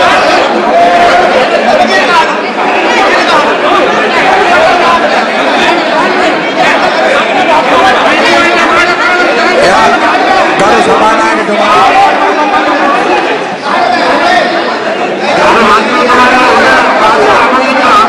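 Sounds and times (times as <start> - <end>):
crowd of men shouting: 0.0 - 18.0.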